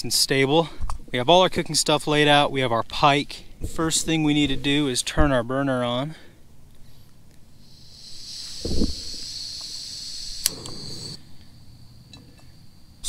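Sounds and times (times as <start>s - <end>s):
gas hissing from stove burner: 7.6s - 11.2s
sharp click: 9.6s - 10.9s.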